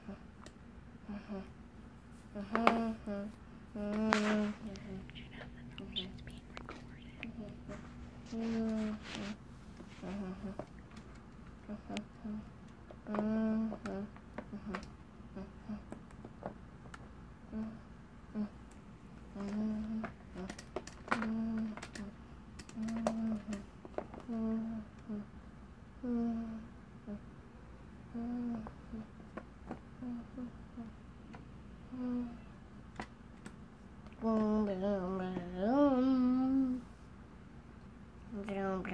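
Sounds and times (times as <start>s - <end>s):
girl singing and humming: 1.0s - 1.6s, 2.2s - 10.6s, 11.6s - 15.9s, 19.3s - 25.3s, 26.0s - 27.2s, 28.1s - 29.2s, 30.0s - 31.0s, 31.9s - 32.6s, 34.2s - 36.9s.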